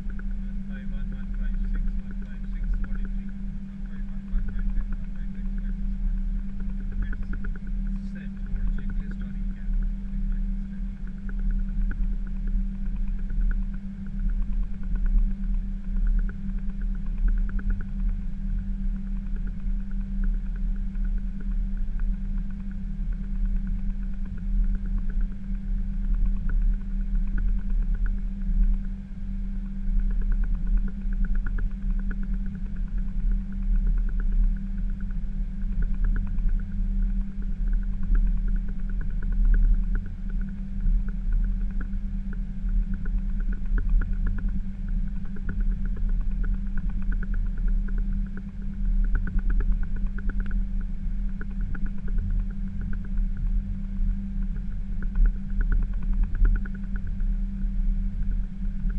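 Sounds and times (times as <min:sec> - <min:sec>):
aircraft cockpit engine rumble: 0:00.0 - 0:58.9.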